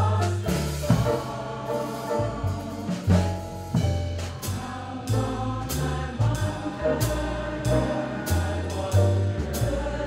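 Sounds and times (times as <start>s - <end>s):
choir singing in harmony: 0.0s - 10.0s
upright bass: 0.0s - 10.0s.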